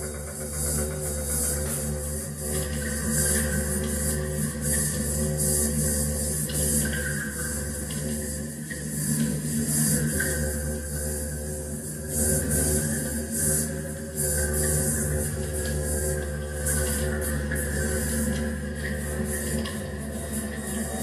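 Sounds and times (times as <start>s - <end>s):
low synth drones: 0.0s - 21.0s.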